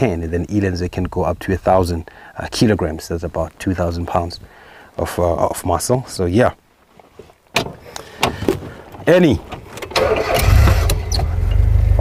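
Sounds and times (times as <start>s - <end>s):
vehicle engine starting and running: 9.5s - 12.0s.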